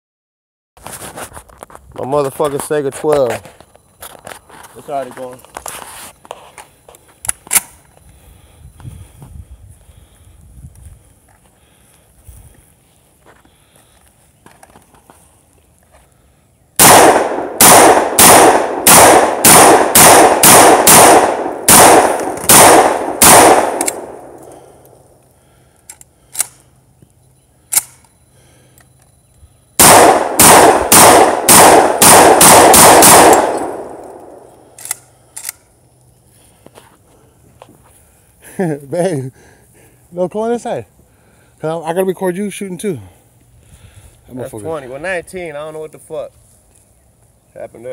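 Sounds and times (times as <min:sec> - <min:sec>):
shotgun firing: 0:16.8 - 0:24.4, 0:29.8 - 0:34.5.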